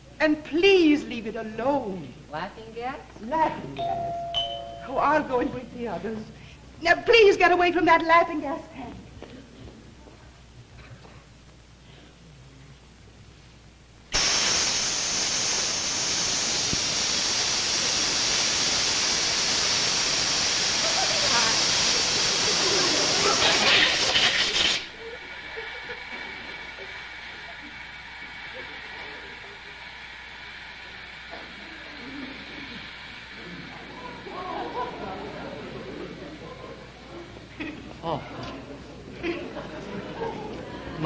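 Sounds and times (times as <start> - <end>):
gas hissing from cylinder: 14.1 - 36.5.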